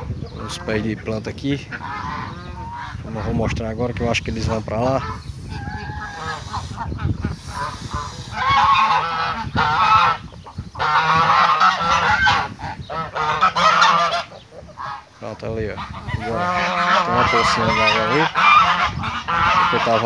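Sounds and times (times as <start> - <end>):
geese honking: 0.0 - 20.0.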